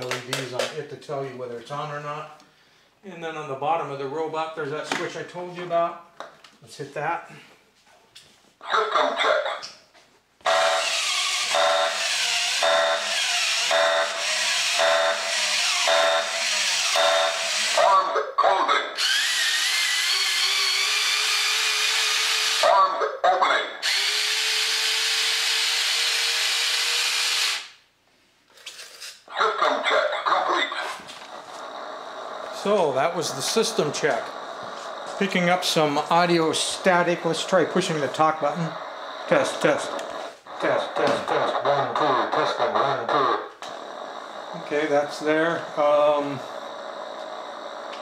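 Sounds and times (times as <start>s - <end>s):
toy robot motors whirring: 10.5s - 18.0s, 19.0s - 22.7s, 23.8s - 27.8s, 43.1s - 48.0s
repeating electronic tones: 32.5s - 48.0s.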